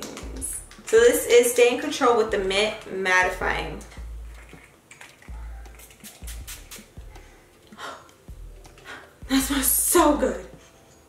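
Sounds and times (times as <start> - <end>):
faint music: 0.0 - 11.0
spray bottle hissing: 5.7 - 7.0.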